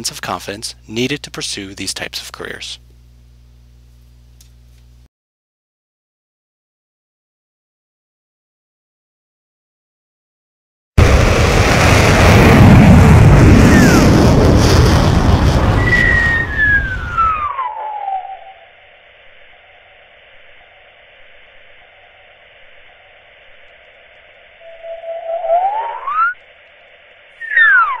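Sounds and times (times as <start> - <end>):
rocket blast with falling whistle: 11.0 - 18.8, 24.6 - 26.4, 27.4 - 28.0
sliding flying saucer whistles: 13.6 - 14.1, 15.6 - 26.5, 27.3 - 28.0
faint hiss: 18.6 - 27.8.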